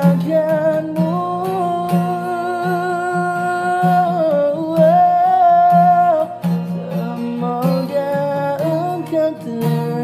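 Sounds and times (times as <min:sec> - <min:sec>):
guitar accompaniment: 0:00.0 - 0:10.0
man singing pop ballad: 0:00.0 - 0:10.0.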